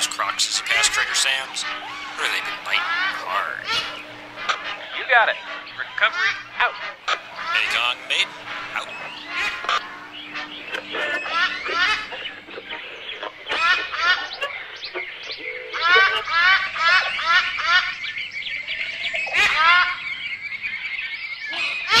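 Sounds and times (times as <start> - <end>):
birds squawking: 0.0 - 22.0.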